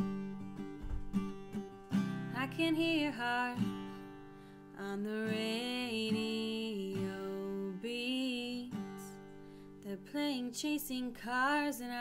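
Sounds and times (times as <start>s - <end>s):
strummed acoustic guitar: 0.0s - 12.0s
woman singing: 2.1s - 12.0s.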